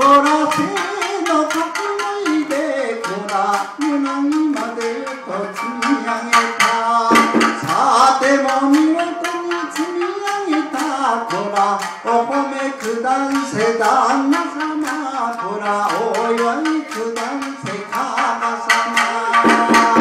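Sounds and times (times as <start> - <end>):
man singing folk song: 0.0 - 20.0
shamisen plucking: 0.0 - 20.0.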